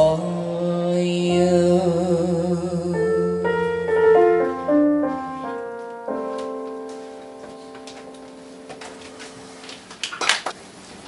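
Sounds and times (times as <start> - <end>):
piano chord ringing: 1.2 - 9.9.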